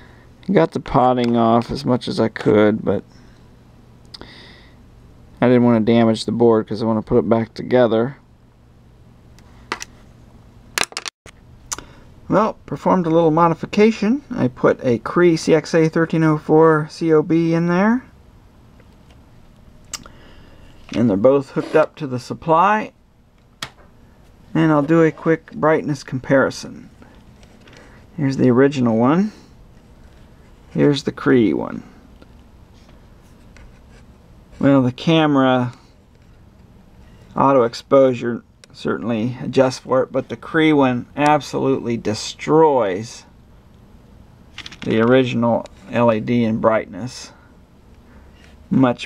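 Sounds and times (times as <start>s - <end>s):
low steady hum: 0.0s - 49.0s.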